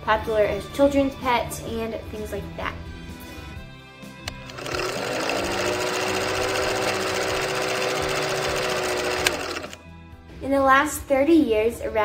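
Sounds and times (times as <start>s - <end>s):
sharp clicks: 4.2s - 5.4s, 8.2s - 9.8s
film projector clattering: 4.3s - 9.8s.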